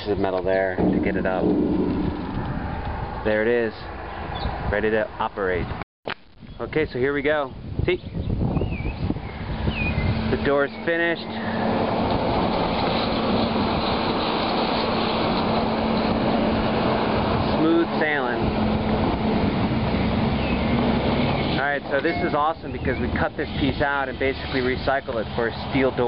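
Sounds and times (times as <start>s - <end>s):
steel sliding door rumbling: 0.5s - 3.3s.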